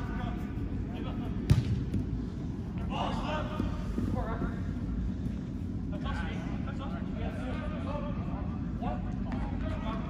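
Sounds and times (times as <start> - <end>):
low rumble of hall: 0.0 - 10.0
ball kick ringing in hall: 1.4 - 2.2.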